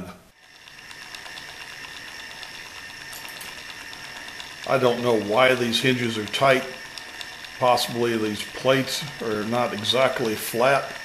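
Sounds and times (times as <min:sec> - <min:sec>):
high motor whine: 0:00.3 - 0:11.0
rapid mechanical ticking: 0:00.3 - 0:11.0
small electric motor running: 0:00.3 - 0:11.0.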